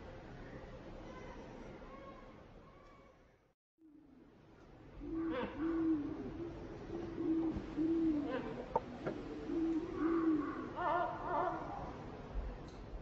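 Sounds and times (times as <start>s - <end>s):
bird hooting calls: 5.0s - 12.0s.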